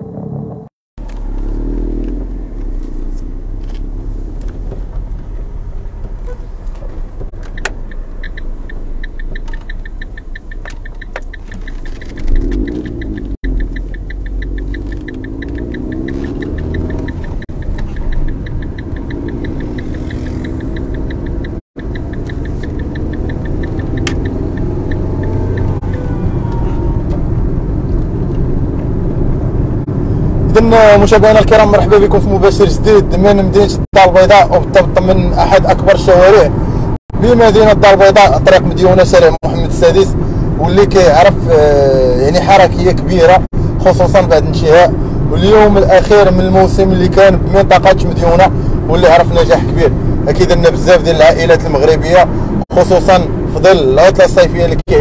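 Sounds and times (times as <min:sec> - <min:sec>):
car road and engine rumble: 0:00.0 - 0:55.0
fast high ticking: 0:07.6 - 0:26.0.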